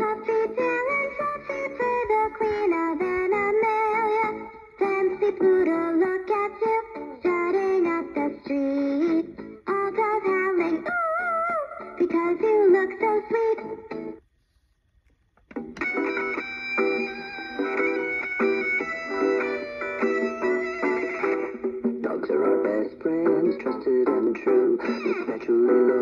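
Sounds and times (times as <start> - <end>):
toy guitar playing a tune: 15.5 - 26.0.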